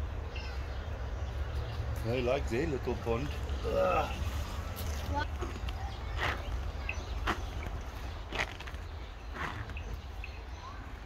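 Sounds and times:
bird chirp: 0:00.0 - 0:11.0
footsteps on a paved path: 0:04.2 - 0:11.0.

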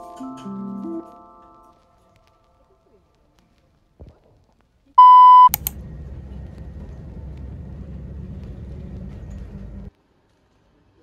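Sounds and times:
loud electronic beep: 0:05.0 - 0:05.6
click: 0:05.4 - 0:05.8
steady low rumble: 0:05.4 - 0:09.9.

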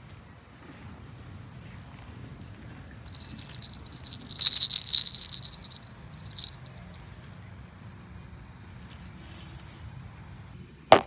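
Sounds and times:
plastic baby rattle shaking: 0:03.1 - 0:06.9.

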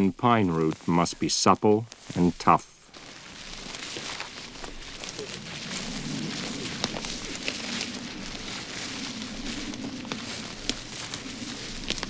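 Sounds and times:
footsteps on dry forest floor: 0:00.0 - 0:12.0
twigs snapping underfoot: 0:01.8 - 0:12.0
low wavering hum: 0:03.2 - 0:12.0.

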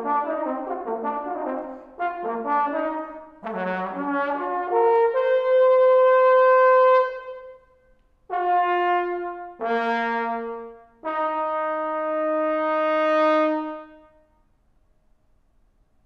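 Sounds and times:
trombone playing a fanfare: 0:00.0 - 0:07.5, 0:08.3 - 0:14.0.

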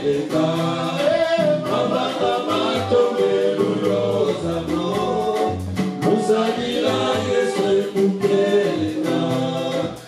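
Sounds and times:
drums: 0:00.0 - 0:10.0
electric guitar: 0:00.0 - 0:10.0
men singing into microphones: 0:00.0 - 0:10.0.

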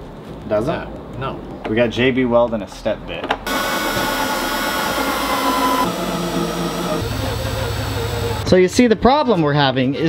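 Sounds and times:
power drill whirring: 0:03.5 - 0:08.5.

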